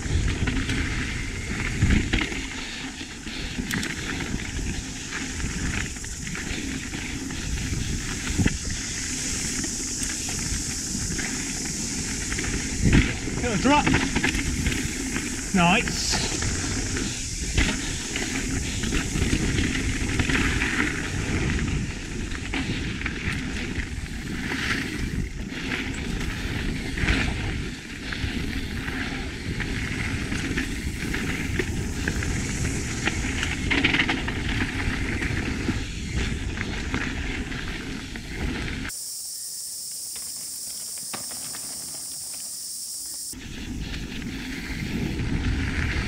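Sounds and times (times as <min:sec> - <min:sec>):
wind on microphone: 0:00.0 - 0:38.9, 0:43.1 - 0:46.0
bike tyres rolling over dirt: 0:00.0 - 0:46.0
steady hiss: 0:00.0 - 0:46.0.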